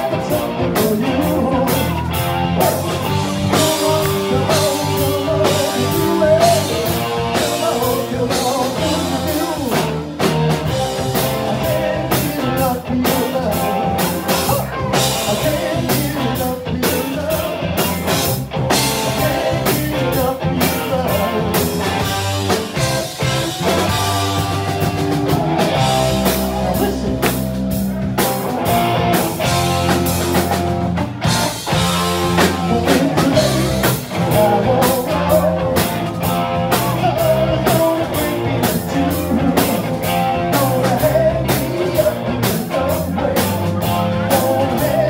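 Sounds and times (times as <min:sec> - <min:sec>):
lead singer singing: 0:00.0 - 0:29.6, 0:31.6 - 0:45.0
bass guitar: 0:00.0 - 0:45.0
distorted electric guitars: 0:00.0 - 0:45.0
drum kit steady beat: 0:00.0 - 0:45.0.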